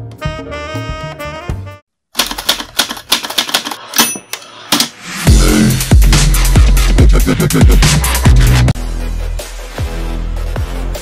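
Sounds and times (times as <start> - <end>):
typewriter keystroke clicks: 2.2 - 4.9.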